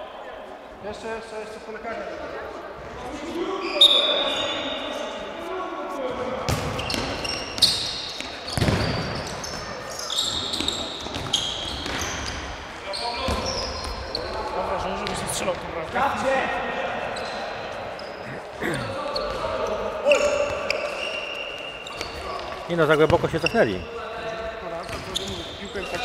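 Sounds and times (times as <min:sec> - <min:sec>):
shoes squeaking on court floor: 0:03.3 - 0:05.2, 0:06.4 - 0:15.6, 0:17.0 - 0:26.0
ball kicks and bounces: 0:08.5 - 0:09.1.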